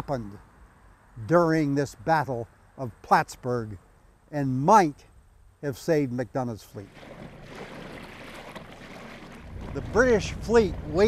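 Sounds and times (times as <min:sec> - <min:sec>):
wind: 0:00.0 - 0:11.0
lake water lapping: 0:06.8 - 0:11.0
ferry engine rumble: 0:09.5 - 0:11.0.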